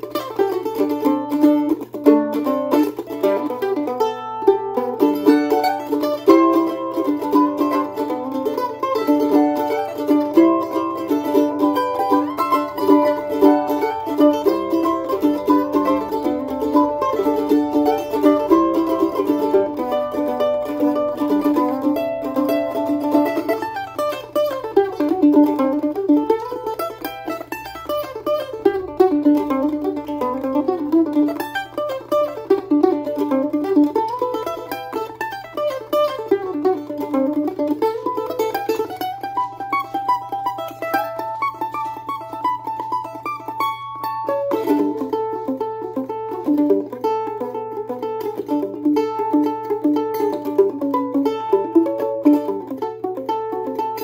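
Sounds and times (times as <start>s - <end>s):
mandolin playing folk tune: 0.0s - 54.0s.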